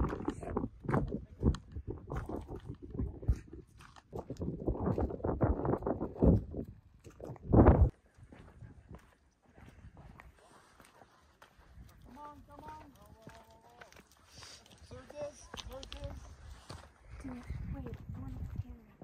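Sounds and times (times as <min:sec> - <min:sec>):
wind buffeting microphone: 0:00.0 - 0:10.3, 0:14.8 - 0:19.0
footsteps on gravel: 0:08.3 - 0:19.0
faint outdoor hush: 0:13.3 - 0:17.7.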